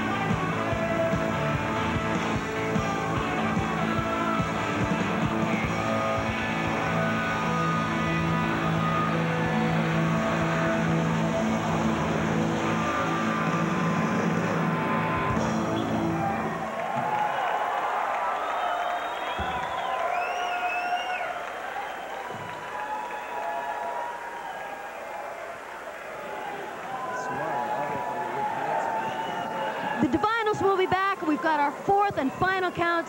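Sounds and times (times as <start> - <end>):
electric guitar and bass chord: 0.0 - 16.3
crowd cheering and whistling: 0.1 - 33.0.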